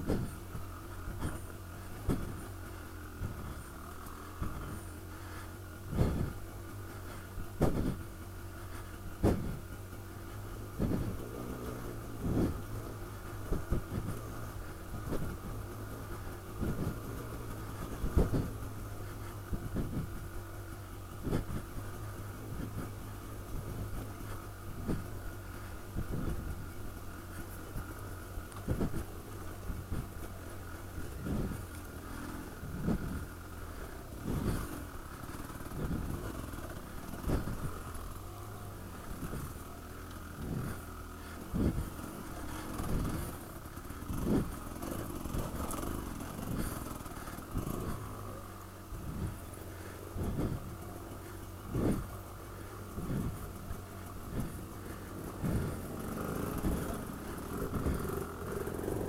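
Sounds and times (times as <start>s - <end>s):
dirt bike engine running: 0.0s - 59.0s.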